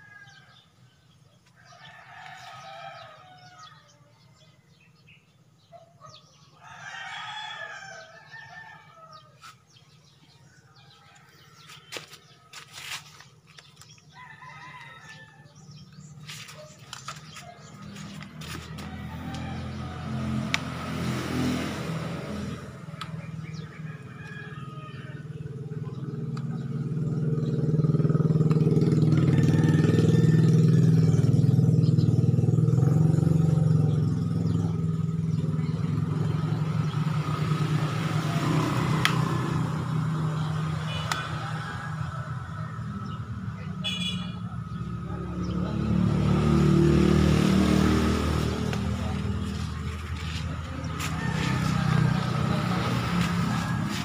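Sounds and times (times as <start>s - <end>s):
vehicle engine passing by: 15.0s - 54.0s.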